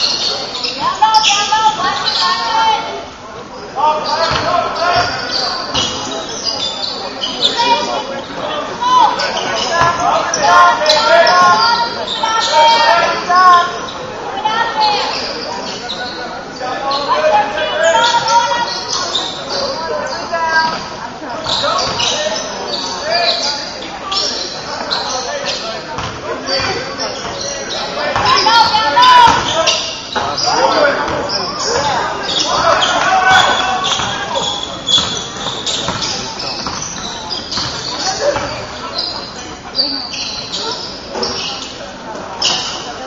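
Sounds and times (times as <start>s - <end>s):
sneakers squeaking on hardwood: 0.0s - 2.4s, 3.8s - 43.0s
players calling out: 0.0s - 43.0s
basketball bouncing: 4.3s - 5.2s, 26.0s - 26.8s, 32.8s - 38.7s.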